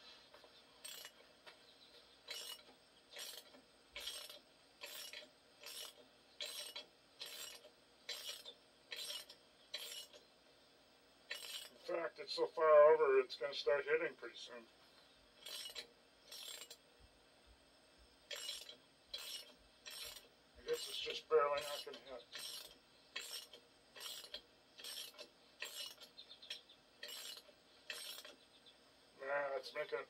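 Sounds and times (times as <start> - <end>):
wrench cranking with metallic rasp: 0.8 - 1.2, 2.2 - 10.2, 11.3 - 11.8, 15.4 - 16.8, 18.3 - 28.4.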